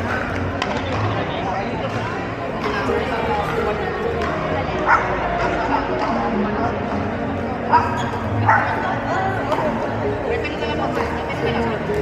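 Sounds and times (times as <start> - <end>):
voices echoing in hall: 0.0 - 12.0.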